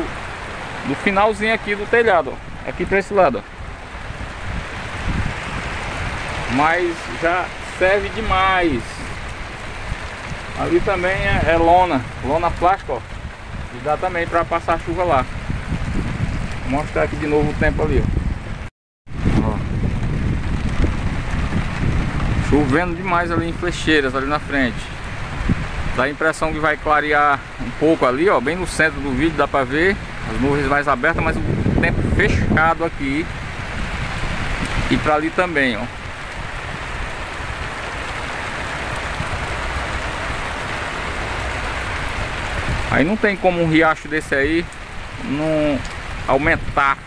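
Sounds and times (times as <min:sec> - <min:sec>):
heavy rain: 0:00.0 - 0:47.0
wind rumbling on microphone: 0:00.0 - 0:47.0.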